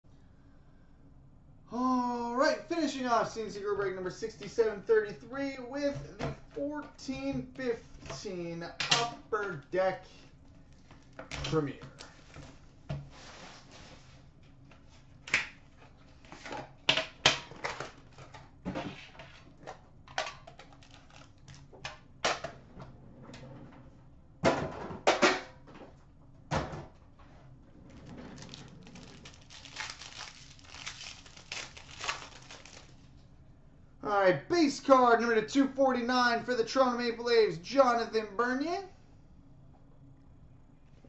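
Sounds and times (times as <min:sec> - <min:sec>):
wrapper and card rustling: 0:20.5 - 0:21.7, 0:28.0 - 0:33.2.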